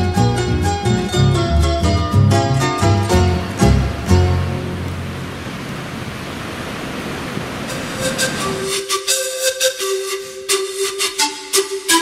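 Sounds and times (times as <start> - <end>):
music: 0.0 - 5.2, 7.7 - 12.0
ocean surf breaking: 0.7 - 9.1.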